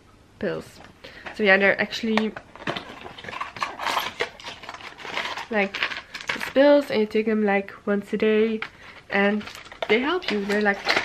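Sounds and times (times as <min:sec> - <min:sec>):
blister pack clicking and crinkling: 0:02.2 - 0:06.7, 0:08.6 - 0:11.0.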